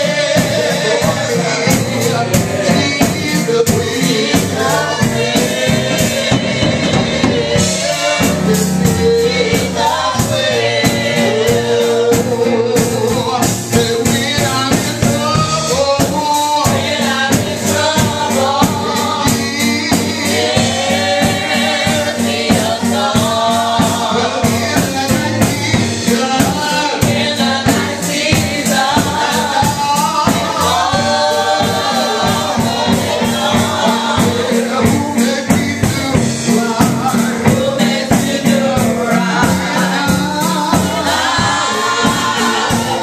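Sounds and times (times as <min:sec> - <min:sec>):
drum kit beat: 0:00.0 - 0:43.0
voices singing gospel: 0:00.0 - 0:43.0.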